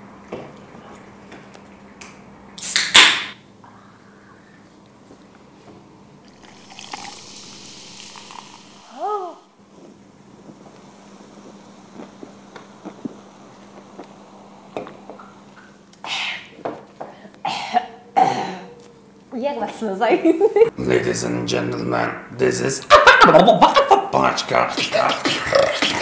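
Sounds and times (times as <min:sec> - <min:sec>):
sips and swallows: 0:06.3 - 0:08.9
cola fizzing into a glass: 0:06.3 - 0:09.0
breathy coughs: 0:17.4 - 0:18.7.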